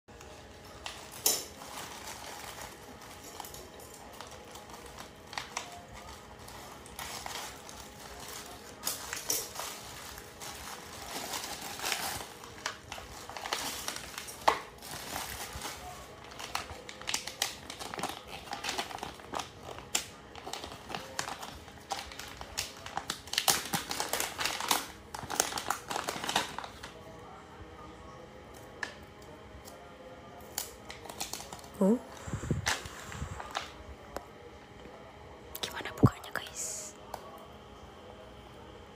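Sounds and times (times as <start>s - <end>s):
scissors cutting plastic: 0.2s - 26.8s, 30.4s - 31.7s
plastic bag crinkling: 0.2s - 27.0s, 30.9s - 34.1s
person saying mm-hmm: 31.8s - 32.2s.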